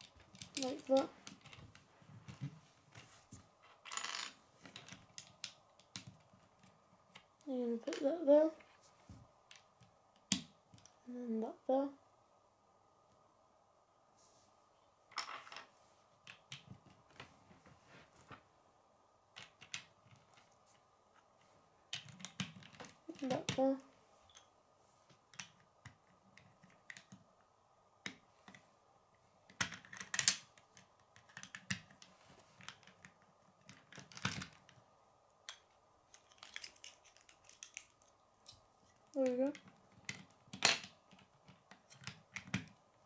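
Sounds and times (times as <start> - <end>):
plastic bricks clicking and snapping: 0.0 - 1.7, 3.9 - 7.3, 21.9 - 23.6, 29.5 - 34.8, 35.4 - 42.8.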